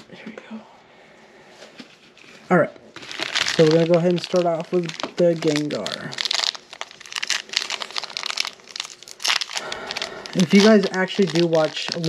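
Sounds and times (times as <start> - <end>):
foil wrapper crinkling: 3.0 - 12.0.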